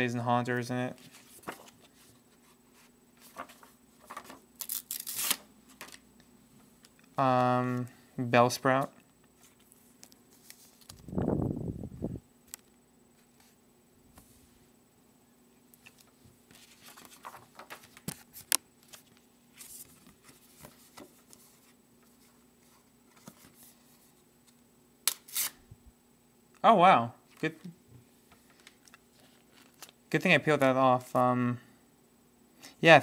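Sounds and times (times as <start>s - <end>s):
cards and paper rustling: 0.9s - 6.0s, 8.8s - 11.1s, 15.8s - 24.2s, 28.4s - 31.2s.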